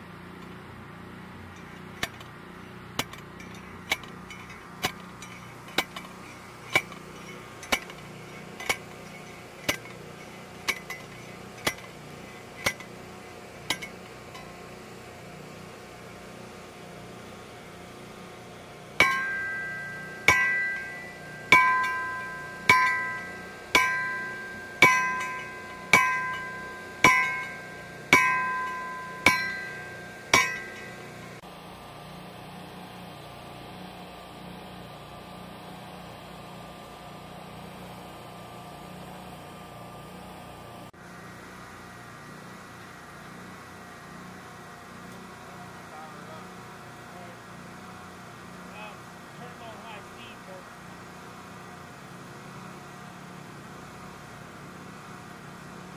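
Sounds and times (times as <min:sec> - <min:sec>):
sledgehammer ringing on steel pipe: 0:03.0 - 0:12.9, 0:18.9 - 0:31.4.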